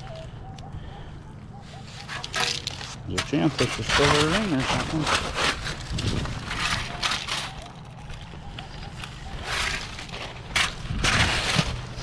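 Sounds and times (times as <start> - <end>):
stones crunching against metal scoop: 2.0 - 12.0.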